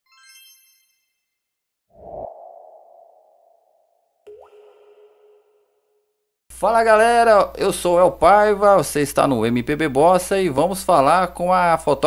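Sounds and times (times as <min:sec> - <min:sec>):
bright high chime: 0:00.1 - 0:01.2.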